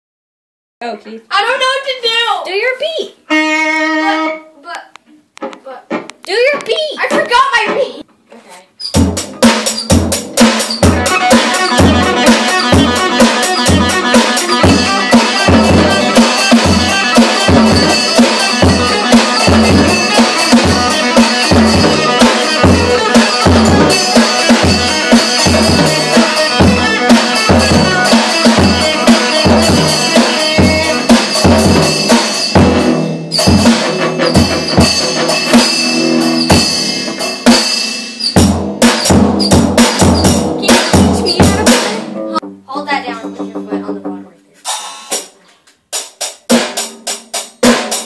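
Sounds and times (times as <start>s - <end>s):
cymbal strikes: 9.3s - 42.6s.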